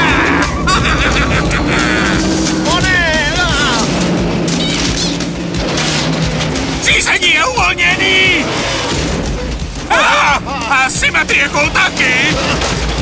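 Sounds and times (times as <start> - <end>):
film score music: 0.0 - 13.0
off-road vehicle engine running: 0.0 - 13.0.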